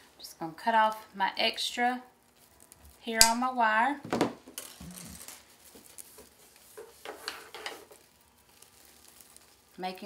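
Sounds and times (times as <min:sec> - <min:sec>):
wire mesh rustling and crinkling: 0:04.5 - 0:10.0.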